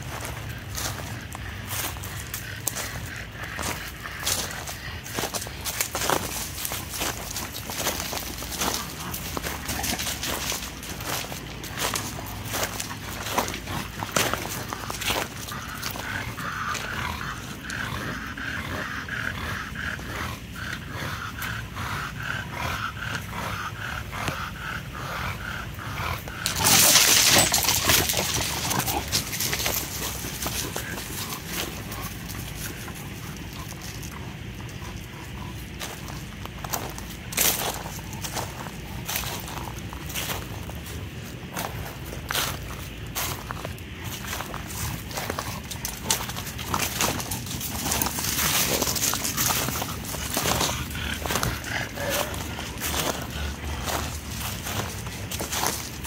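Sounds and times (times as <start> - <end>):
dog panting: 0.0 - 56.0.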